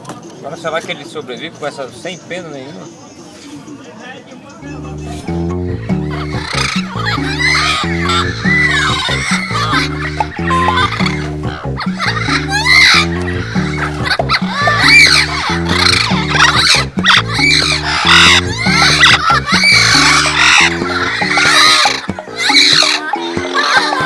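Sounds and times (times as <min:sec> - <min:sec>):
background music with stepping bass: 0:04.6 - 0:24.0
parrots squawking: 0:04.9 - 0:24.0.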